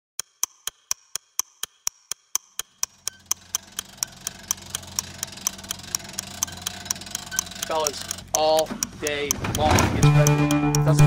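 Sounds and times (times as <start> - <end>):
fast clock ticking: 0.2 - 11.0.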